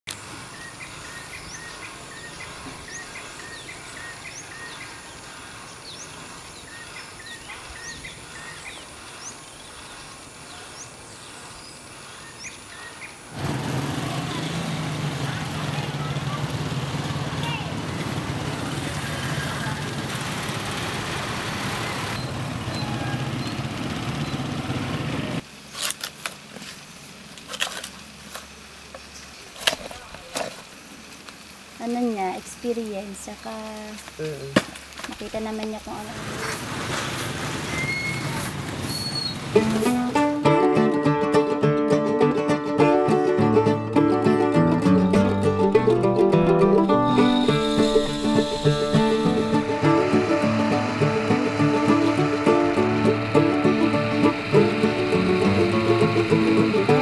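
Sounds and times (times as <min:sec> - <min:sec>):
birds chirping: 0:00.1 - 0:13.4, 0:22.1 - 0:24.8, 0:45.0 - 0:57.0
loud steady noise with hum: 0:47.4 - 0:57.0.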